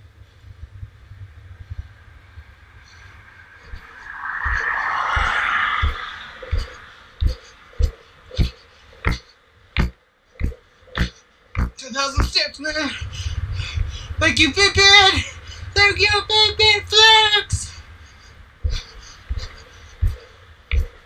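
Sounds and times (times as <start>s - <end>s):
loud rushing noise: 1.2s - 7.6s.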